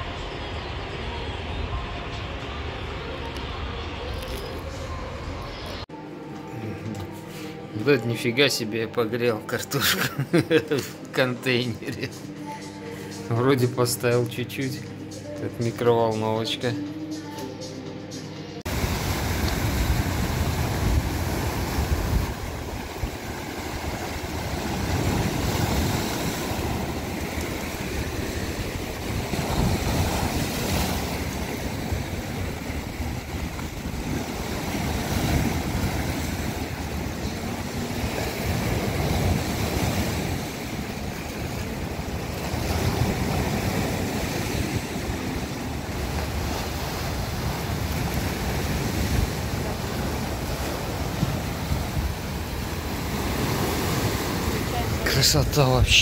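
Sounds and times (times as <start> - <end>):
sea surf on rocky shore: 18.6 - 56.0
wind buffeting microphone: 18.7 - 40.8.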